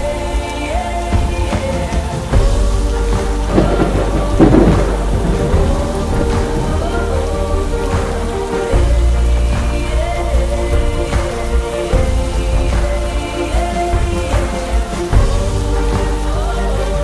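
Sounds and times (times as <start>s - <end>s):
instrumental music with deep bass: 0.0s - 17.0s
steady rain: 0.0s - 17.0s
thunder rumble: 0.0s - 17.0s.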